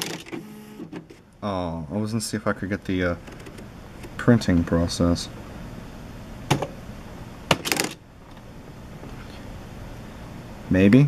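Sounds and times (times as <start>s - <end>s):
typewriter clicks: 0.0s - 0.4s, 7.5s - 8.0s
typewriter mechanical strokes rattling: 0.0s - 0.4s, 7.5s - 8.0s.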